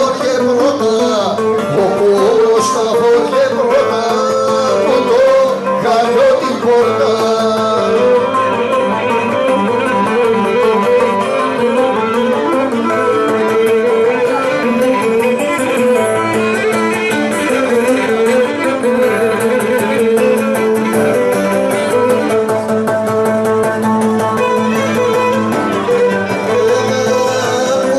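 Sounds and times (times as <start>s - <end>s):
plucked strings melody: 0.0s - 27.9s
bowed string: 8.0s - 27.9s.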